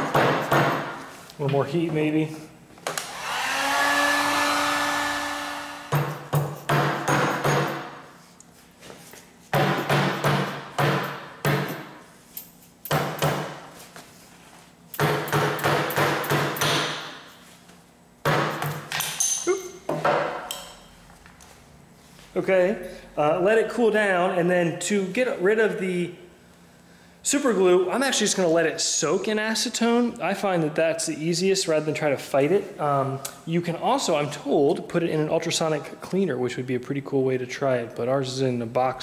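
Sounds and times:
heat gun blowing: 0:03.0 - 0:06.0
hammer striking metal vise: 0:05.9 - 0:07.9, 0:15.0 - 0:17.2.

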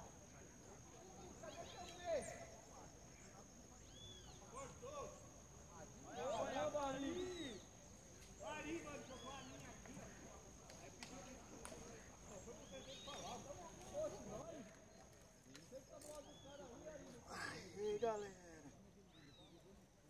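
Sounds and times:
distant people chattering: 0:00.0 - 0:20.0.

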